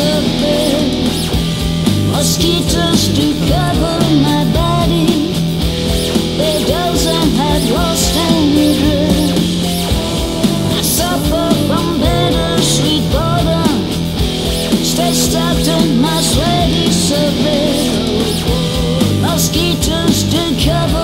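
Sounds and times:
lead guitar bending in pitch: 0.0s - 20.1s
rock band playing instrumental: 0.0s - 21.0s.

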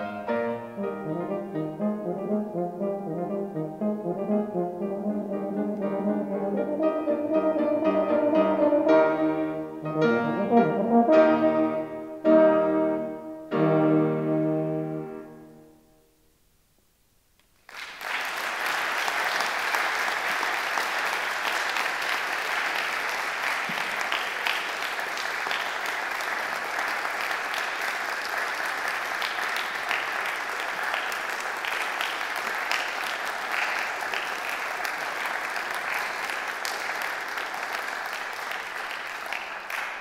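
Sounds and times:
audience applauding: 17.6s - 40.0s.

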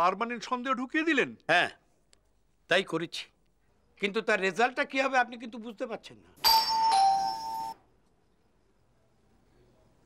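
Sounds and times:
doorbell chime: 6.4s - 7.8s.

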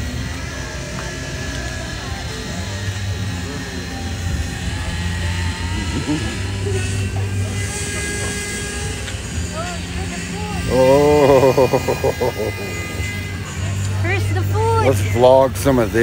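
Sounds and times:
faint distant voices: 0.0s - 16.0s
low mechanical hum: 0.0s - 16.0s.

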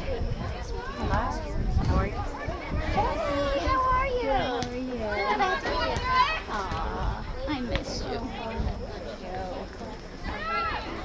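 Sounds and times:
young voices calling out: 0.0s - 9.1s.

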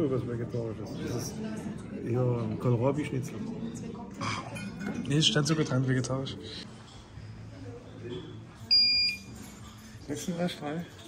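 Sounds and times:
thermometer beep: 8.7s - 9.3s.

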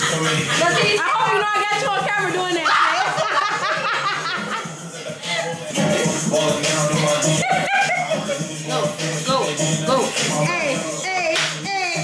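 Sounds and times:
chatter: 0.0s - 12.0s
hip-hop music: 0.0s - 12.0s
women laughing: 2.6s - 5.6s, 7.0s - 8.5s.

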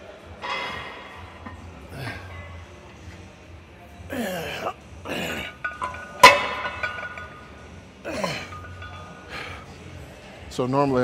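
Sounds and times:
weight plate clanking on metal: 5.6s - 7.4s.

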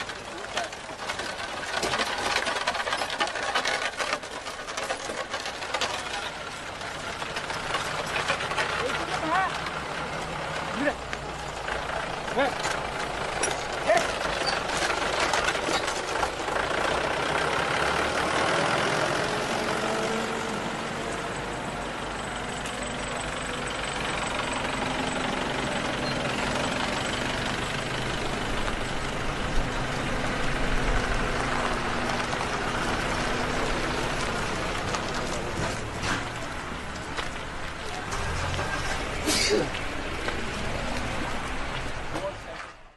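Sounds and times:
pickup truck driving by: 0.0s - 42.9s
tractor engine running: 0.0s - 42.9s.

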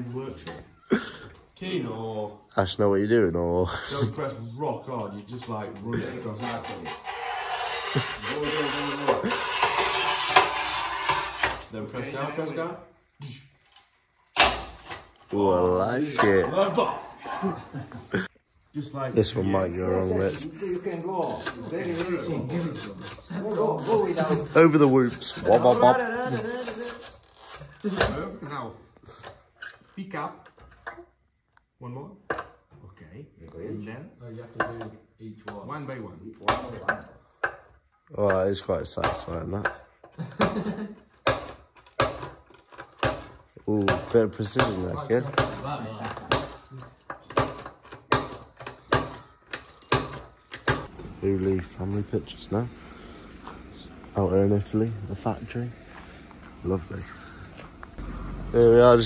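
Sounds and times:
tile cutter rasping across tile: 6.3s - 11.7s, 20.0s - 28.1s.

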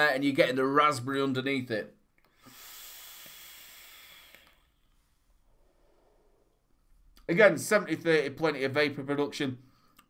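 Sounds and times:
hiss of air through vape: 2.4s - 4.7s.

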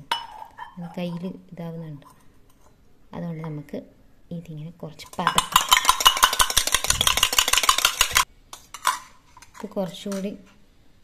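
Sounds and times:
metal spoon stirring in steel tumbler: 5.1s - 10.3s.

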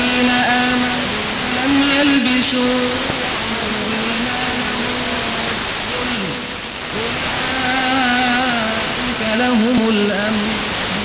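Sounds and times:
person reciting in long notes: 0.0s - 11.0s
radio static hiss: 0.0s - 11.0s.

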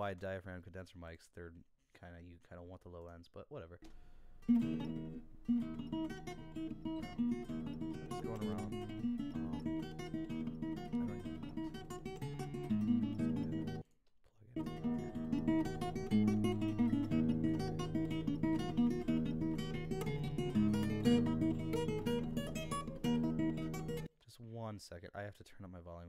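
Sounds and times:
fingerstyle acoustic guitar tune: 3.9s - 13.8s, 14.6s - 24.1s.

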